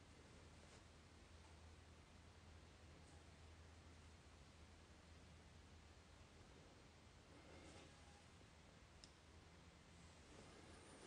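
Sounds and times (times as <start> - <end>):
faint click: 9.0 - 9.2.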